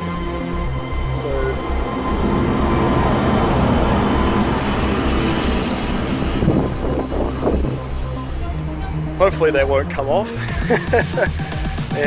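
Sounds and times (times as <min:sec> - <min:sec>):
road vehicle passing by: 0:00.8 - 0:08.6.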